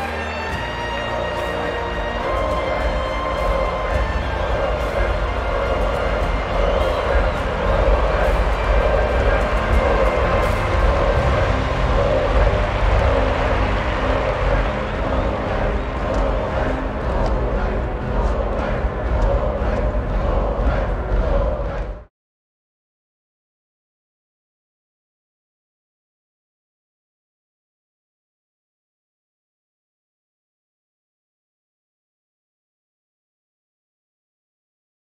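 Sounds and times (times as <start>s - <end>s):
film score music: 0.0s - 22.1s
stadium crowd cheering: 0.0s - 22.1s.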